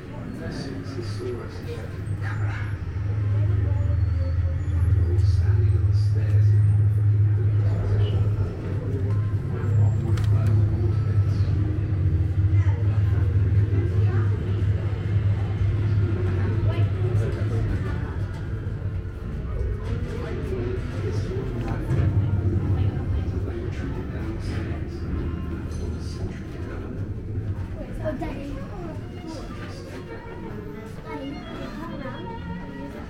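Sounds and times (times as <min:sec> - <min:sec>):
faint voices: 0:00.0 - 0:33.0
deep low rumble: 0:01.4 - 0:29.0.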